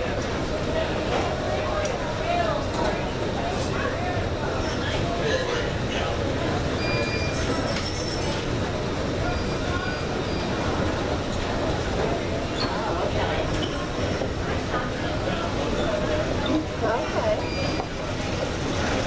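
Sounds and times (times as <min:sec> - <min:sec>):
airport terminal rumble: 0:00.0 - 0:19.0.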